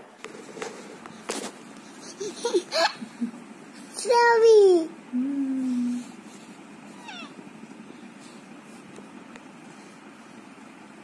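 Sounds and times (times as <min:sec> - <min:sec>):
electric fan whirring: 0:00.0 - 0:11.0.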